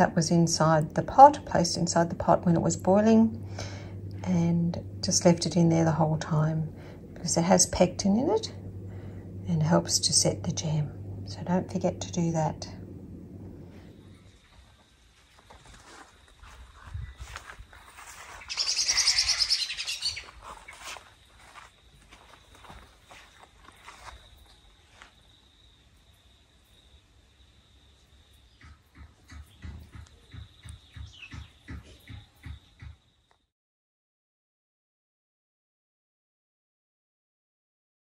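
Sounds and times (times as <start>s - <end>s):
quiet garden ambience: 0.0s - 33.5s
bird chattering call: 18.4s - 20.3s.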